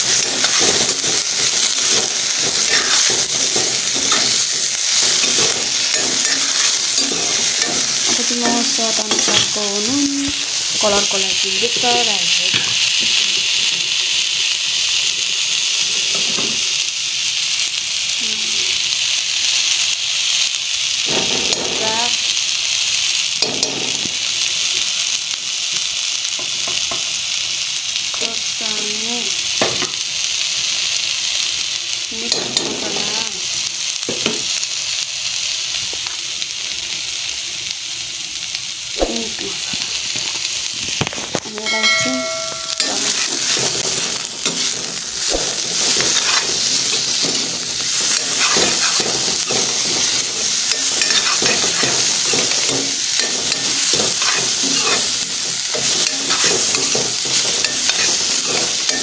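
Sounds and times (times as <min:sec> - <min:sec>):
metal spoon scraping a pan: 0:00.0 - 0:09.6, 0:41.6 - 0:59.0
vegetables sizzling in a pan: 0:00.0 - 0:59.0.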